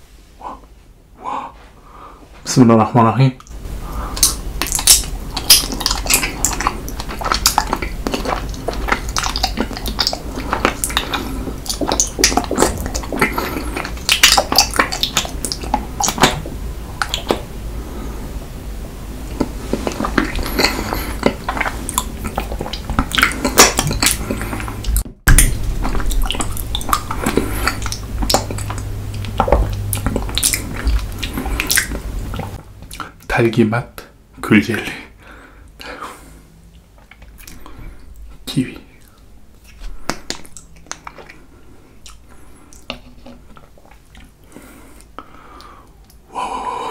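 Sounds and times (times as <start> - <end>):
sharp wet clicks: 3.4 - 17.5, 19.9 - 33.2, 39.0 - 41.4
wet squelching and sucking: 3.4 - 18.2, 19.2 - 33.2.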